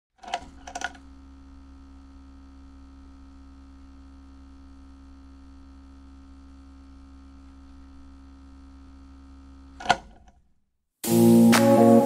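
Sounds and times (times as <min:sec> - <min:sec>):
electric hum with held tones: 0:00.2 - 0:10.0.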